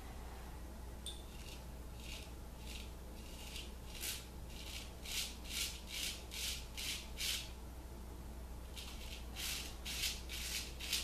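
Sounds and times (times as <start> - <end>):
razor scraping stubble: 1.3 - 7.5, 8.8 - 11.0.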